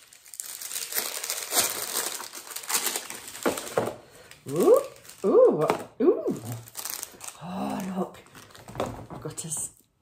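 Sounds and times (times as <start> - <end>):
wrapping paper rustling: 0.0 - 9.0.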